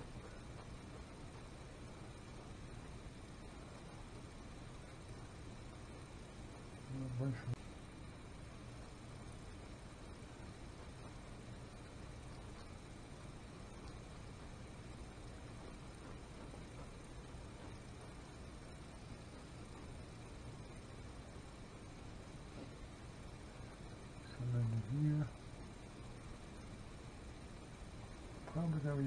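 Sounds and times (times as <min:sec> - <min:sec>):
low hum: 0:00.0 - 0:29.0
steady hiss: 0:00.0 - 0:29.0.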